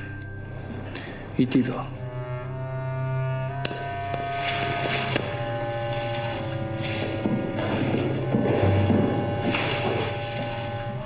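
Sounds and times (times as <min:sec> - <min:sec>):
long held string tones: 0:00.0 - 0:11.0
low sustained drone: 0:00.0 - 0:11.0.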